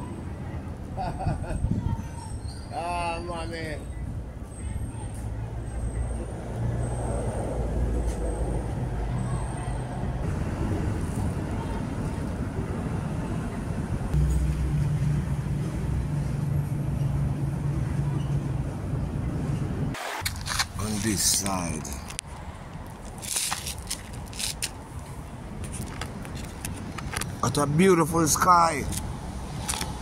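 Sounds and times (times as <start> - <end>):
vehicle engine humming: 5.3 - 30.0.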